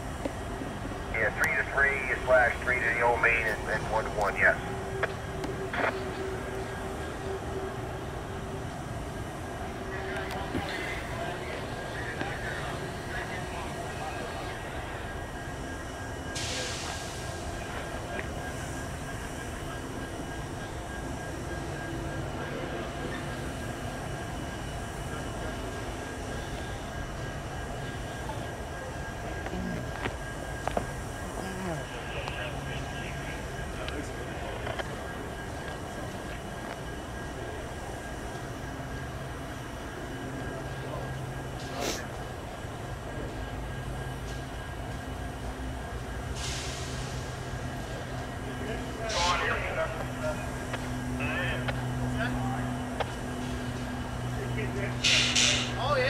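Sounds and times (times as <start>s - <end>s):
idling diesel locomotives: 0.0s - 56.0s
air hissing: 55.0s - 55.8s.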